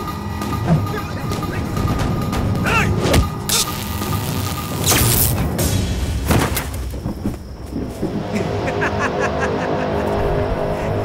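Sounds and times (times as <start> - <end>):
film score with ticking beat: 0.0 - 6.3.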